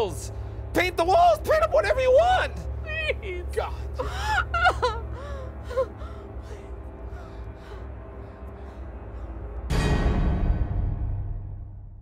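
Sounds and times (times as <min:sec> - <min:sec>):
low music drone: 0:00.0 - 0:12.0
woman sobbing and wailing: 0:02.2 - 0:09.7.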